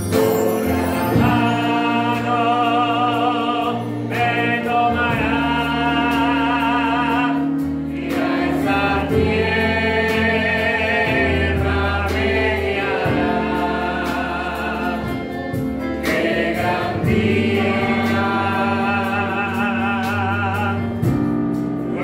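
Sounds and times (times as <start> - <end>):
keyboard: 0.0 - 22.0
man singing into a microphone: 18.4 - 21.0.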